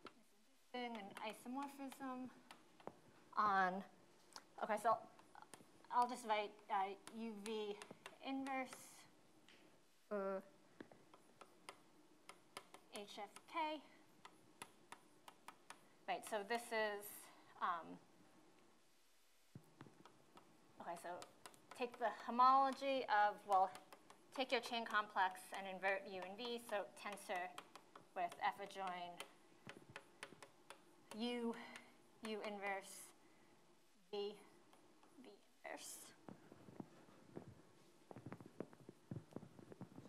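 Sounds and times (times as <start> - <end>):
chalk clicking on blackboard: 5.0 - 9.0, 11.1 - 16.4, 19.8 - 32.9.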